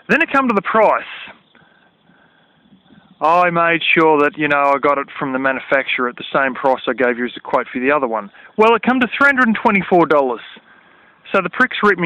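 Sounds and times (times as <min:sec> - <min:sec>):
man speaking: 0:00.0 - 0:01.4, 0:03.2 - 0:10.6, 0:11.2 - 0:12.0
low background noise: 0:00.0 - 0:12.0.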